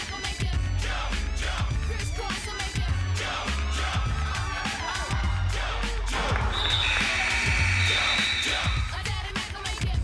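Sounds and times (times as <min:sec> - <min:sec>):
pop music: 0:00.0 - 0:10.0
referee's whistle long blast: 0:06.5 - 0:08.9.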